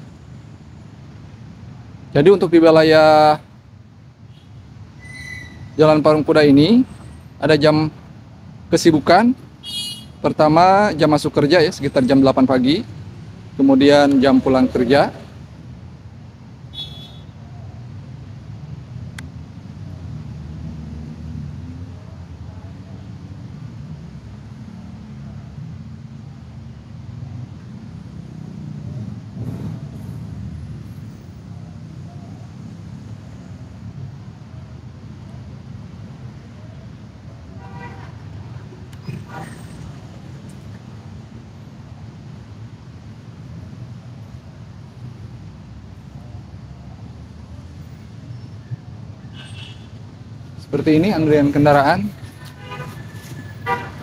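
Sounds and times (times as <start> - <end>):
road traffic rumble: 0.0 - 54.0
vehicle horn toots: 9.6 - 10.2, 16.7 - 17.3, 37.6 - 38.2, 49.3 - 50.0, 52.4 - 54.0.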